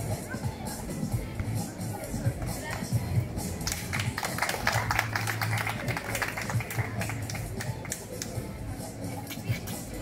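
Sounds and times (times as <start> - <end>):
crowd clapping: 3.6 - 8.3.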